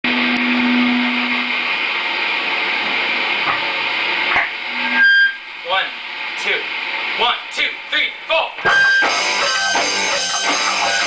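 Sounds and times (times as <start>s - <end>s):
amplifier buzz and hiss: 0.0s - 7.9s, 8.6s - 11.0s
low hum: 0.0s - 11.0s
brief high tone: 0.1s - 1.6s.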